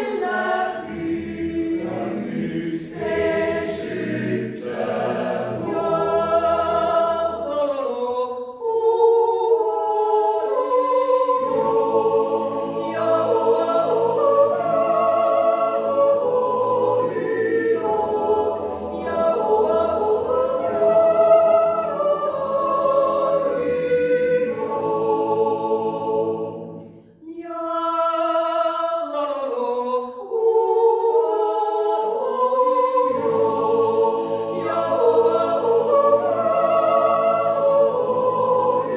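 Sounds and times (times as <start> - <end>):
choir yodelling a cappella: 0.0 - 38.9.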